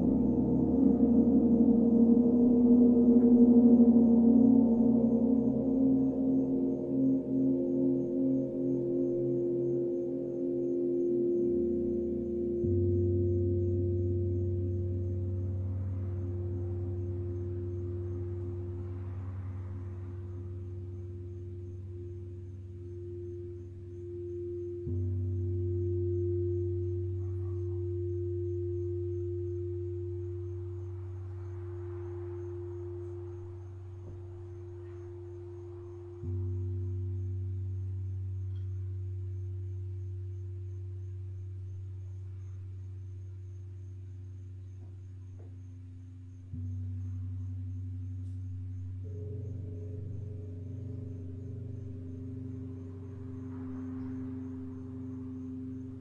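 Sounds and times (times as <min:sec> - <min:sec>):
deep struck singing bowl: 0:00.0 - 0:56.0
wavering singing bowl tone: 0:00.0 - 0:56.0.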